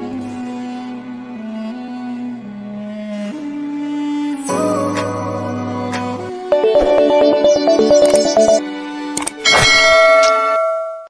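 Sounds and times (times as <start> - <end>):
bright bell ding: 9.7 - 11.0.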